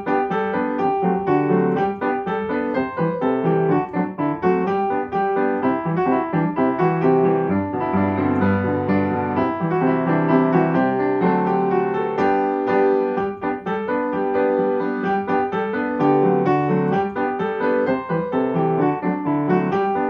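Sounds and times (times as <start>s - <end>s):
upright piano playing: 0.0s - 20.0s.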